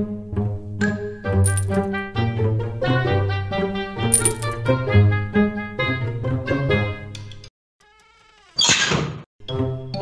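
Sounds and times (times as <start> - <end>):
background music: 0.0 - 7.5, 9.4 - 10.0.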